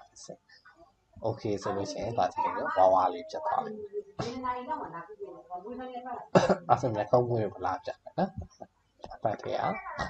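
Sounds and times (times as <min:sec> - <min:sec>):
person talking: 0:01.2 - 0:10.0.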